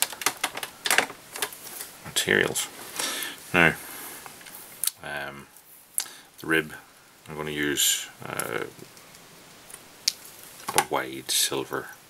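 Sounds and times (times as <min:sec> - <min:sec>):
man speaking syllable: 0:02.0 - 0:02.7, 0:03.5 - 0:03.8, 0:05.0 - 0:05.5, 0:06.4 - 0:08.8
faint sharp clicks: 0:06.0 - 0:06.5.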